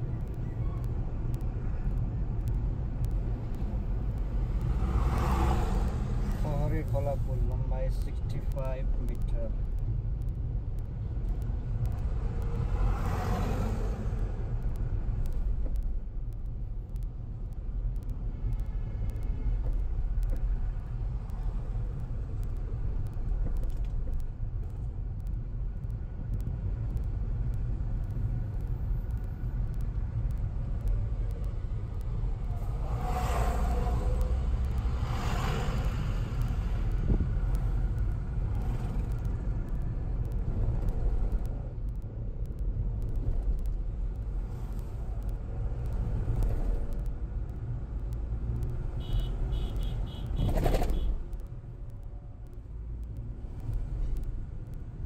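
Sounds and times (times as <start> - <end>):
car engine and tyres rumbling: 0.0 - 55.0.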